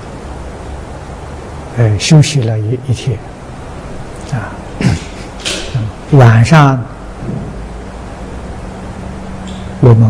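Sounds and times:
faint low hum: 0.0 - 10.0
steady hiss: 0.0 - 10.0.

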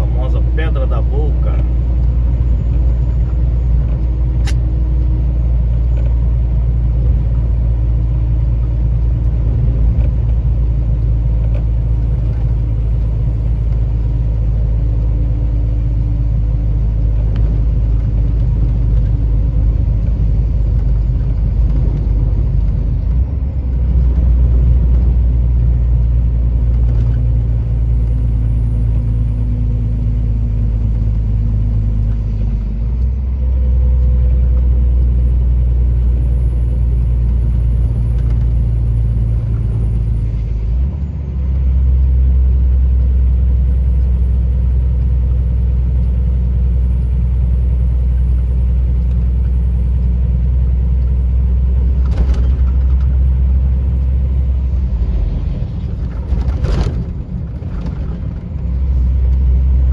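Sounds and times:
road rumble: 0.0 - 59.9
truck engine drone: 0.0 - 59.9
click: 4.4 - 4.6.

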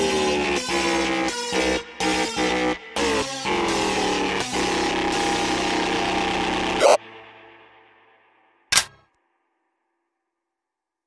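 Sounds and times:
dense electronic music: 0.0 - 7.4.

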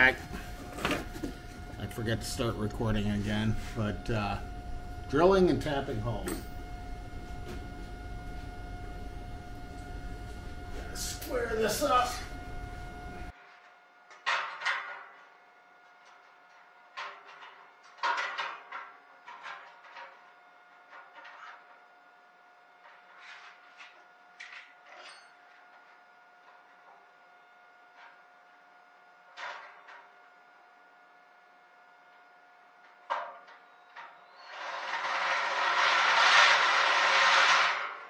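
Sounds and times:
faint hum: 0.0 - 13.3.

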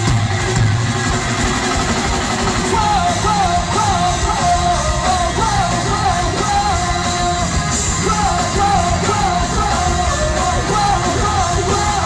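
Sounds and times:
punk rock band playing live: 0.0 - 12.0
person singing: 2.6 - 12.0.

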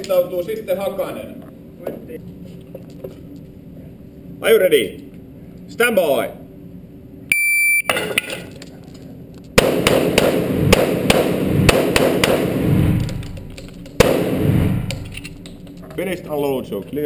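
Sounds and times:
pistol shots echoing indoors: 9.6 - 15.6.

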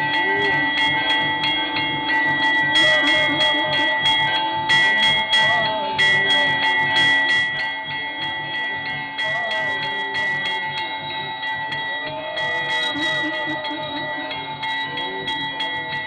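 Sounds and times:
temple bells ringing: 0.0 - 16.0.

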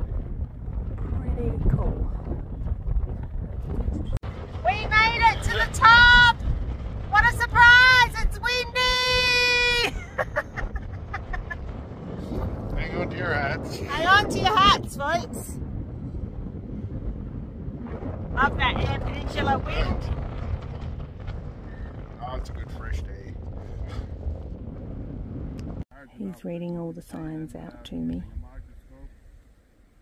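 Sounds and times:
wind buffeting microphone: 0.0 - 30.0
woman laughing: 9.8 - 11.6.

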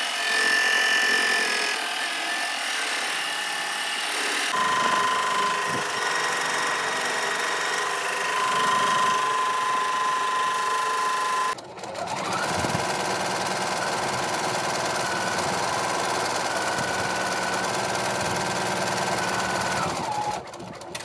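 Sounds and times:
embroidery machine stitching: 4.1 - 21.0.

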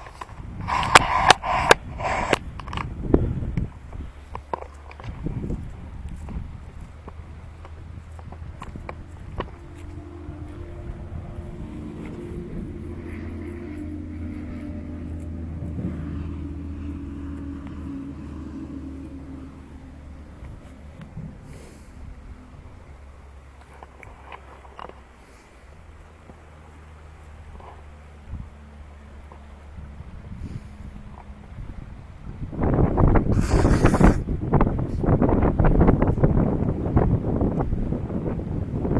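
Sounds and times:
distant vehicle engine passing: 0.0 - 33.4.

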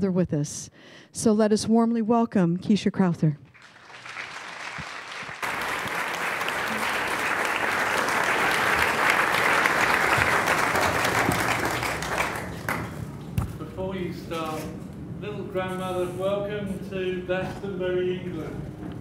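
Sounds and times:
audience applauding: 3.5 - 13.1.

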